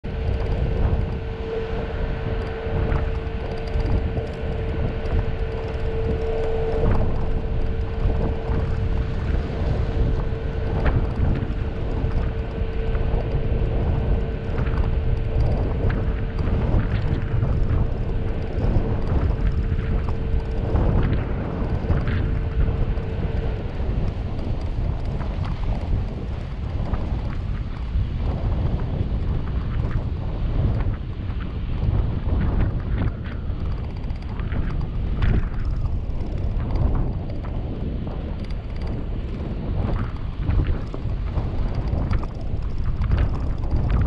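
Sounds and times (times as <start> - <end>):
steady hum: 0.0 - 44.0
stones clicking under tyres: 29.4 - 44.0.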